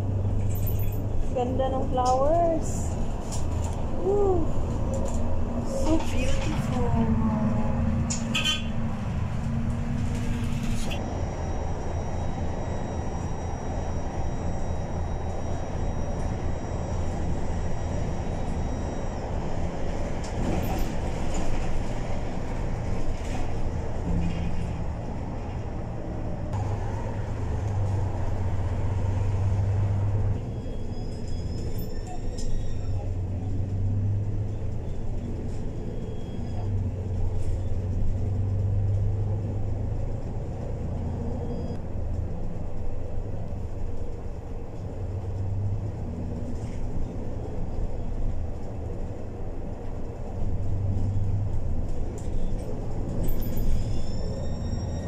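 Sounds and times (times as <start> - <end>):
bus engine rumble: 0.0 - 55.0
road noise: 0.0 - 55.0.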